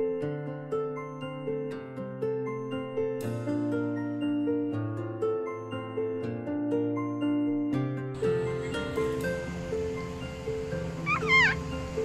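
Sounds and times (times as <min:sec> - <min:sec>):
background music: 0:00.0 - 0:12.0
puppy squealing: 0:11.0 - 0:11.6.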